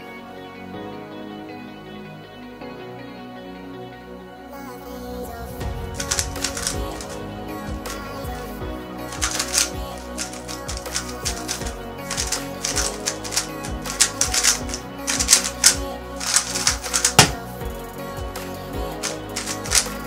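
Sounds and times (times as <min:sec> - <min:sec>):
background music: 0:00.0 - 0:20.0
plastic puzzle cube clicking: 0:06.0 - 0:07.2, 0:09.1 - 0:17.4, 0:19.0 - 0:20.0.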